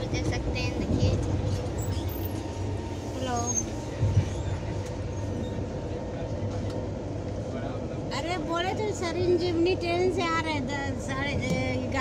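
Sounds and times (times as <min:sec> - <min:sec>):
train carriage rumble: 0:00.0 - 0:12.0.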